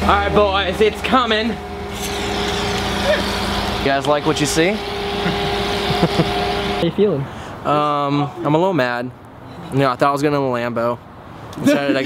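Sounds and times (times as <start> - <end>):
forklift engine humming: 0.0 - 7.0.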